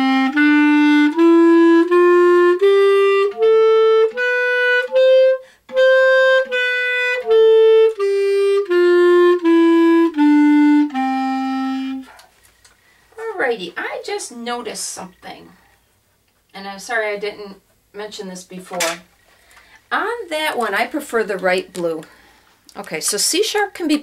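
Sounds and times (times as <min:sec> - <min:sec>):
clarinet playing a scale: 0:00.0 - 0:12.3.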